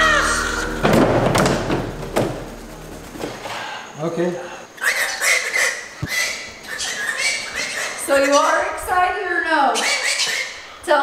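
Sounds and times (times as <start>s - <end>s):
cockatoo screeching words: 4.8s - 11.0s.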